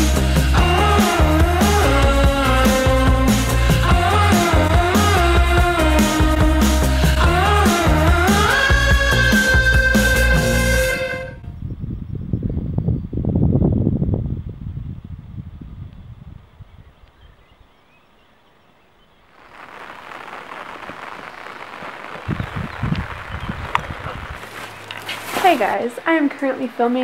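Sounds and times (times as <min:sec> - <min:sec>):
background music: 0:00.0 - 0:11.4
wind rumble on microphone: 0:11.1 - 0:17.8, 0:21.8 - 0:25.0
steady outdoor hiss: 0:14.4 - 0:27.0.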